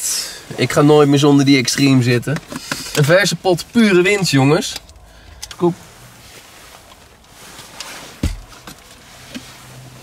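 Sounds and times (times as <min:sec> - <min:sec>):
dull thump: 0:08.2 - 0:08.5.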